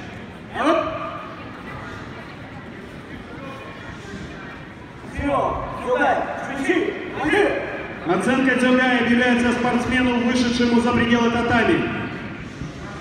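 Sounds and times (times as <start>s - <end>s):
murmur of a sports hall: 0.0s - 13.0s.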